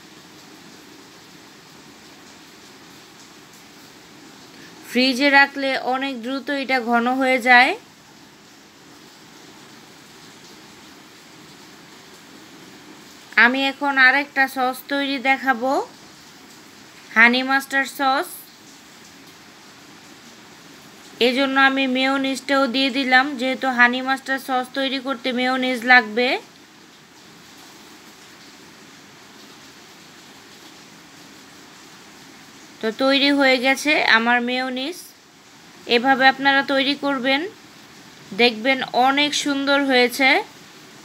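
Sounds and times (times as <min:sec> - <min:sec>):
steady hiss: 0:00.0 - 0:05.3
room noise hiss: 0:00.0 - 0:41.0.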